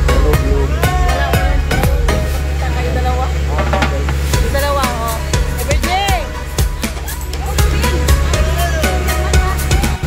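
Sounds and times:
upbeat music with drum beat: 0.0s - 2.6s, 3.6s - 10.0s
motorboat engine drone: 0.0s - 10.0s.

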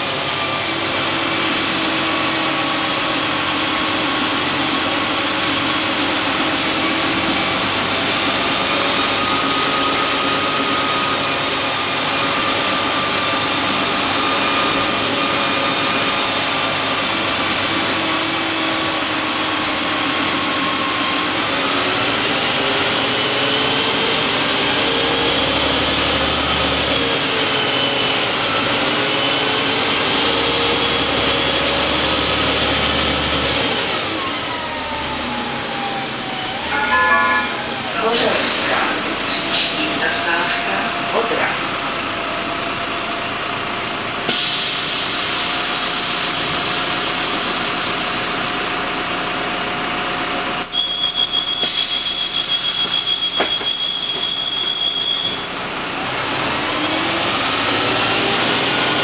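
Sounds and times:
road noise: 0.0s - 50.6s, 55.3s - 59.0s
bus diesel engine drone: 0.0s - 59.0s
whining tones: 34.2s - 42.3s.

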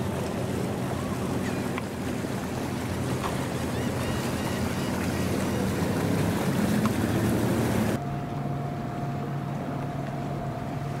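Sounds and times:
outboard motor running slowly: 0.0s - 11.0s.

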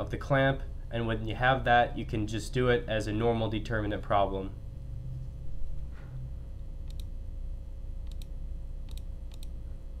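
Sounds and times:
low steady hum: 0.0s - 10.0s
computer mouse clicking: 6.8s - 7.1s, 8.0s - 8.3s, 8.9s - 9.6s.

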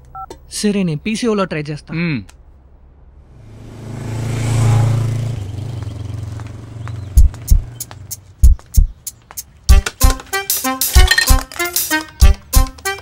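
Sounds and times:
vehicle engine passing by: 2.8s - 8.4s.

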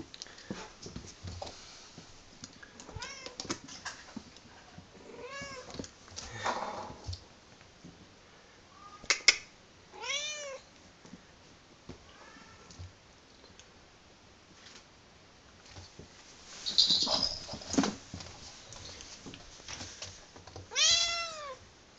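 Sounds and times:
kitten meowing: 20.7s - 21.6s.

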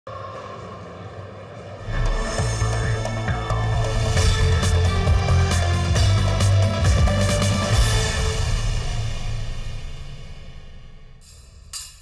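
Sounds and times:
synthesized drone: 0.1s - 11.3s
theme music: 0.2s - 12.0s.

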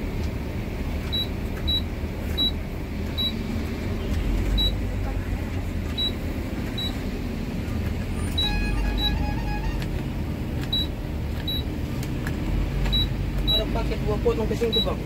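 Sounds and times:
bus engine running: 0.0s - 15.0s
short high beeps: 8.3s - 9.8s.

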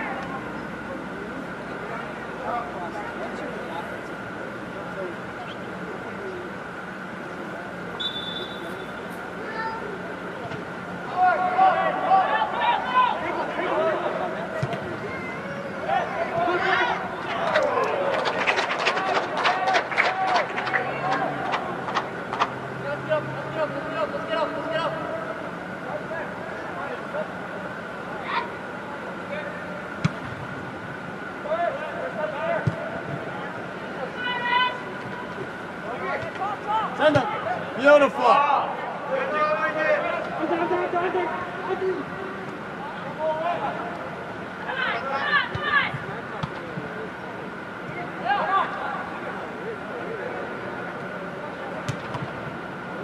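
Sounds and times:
faint steady hum: 0.0s - 53.0s
players shouting and calling: 0.0s - 53.0s.

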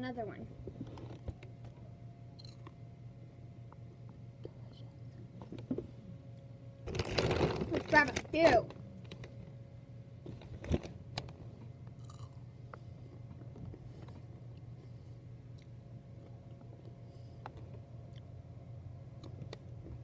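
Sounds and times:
person chewing and crunching food: 2.4s - 2.8s, 10.2s - 18.4s.

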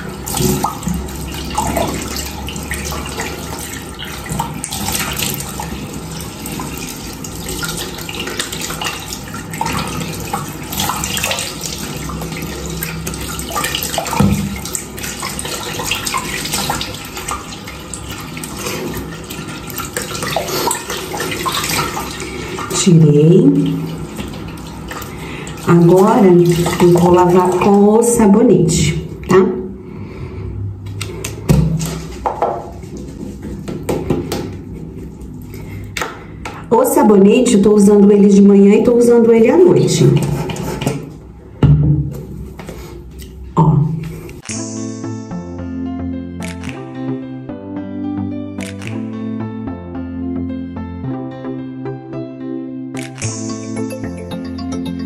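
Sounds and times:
water splashing on face: 0.0s - 28.2s
tap water running into sink: 0.0s - 29.3s, 30.9s - 34.8s, 38.9s - 43.4s.

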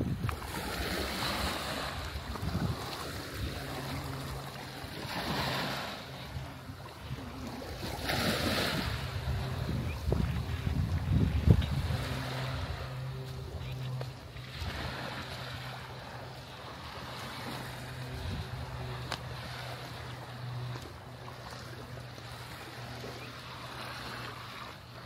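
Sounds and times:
wind buffeting microphone: 0.0s - 15.3s, 17.0s - 19.6s
waves splashing on rocks: 7.2s - 13.0s.

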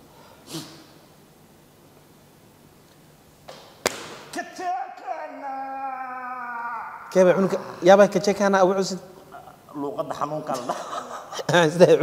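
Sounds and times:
sharp smack: 3.5s - 4.3s.

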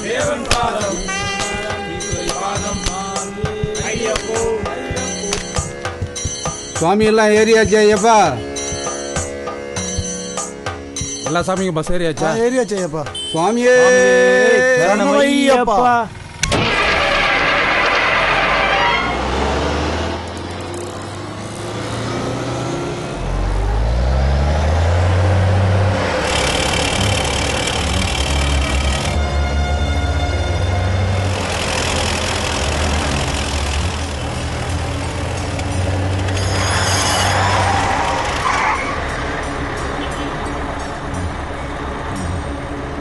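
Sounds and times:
vehicle horn: 1.0s - 2.0s, 13.2s - 13.6s, 39.9s - 40.5s
bus engine revving: 16.1s - 43.0s.

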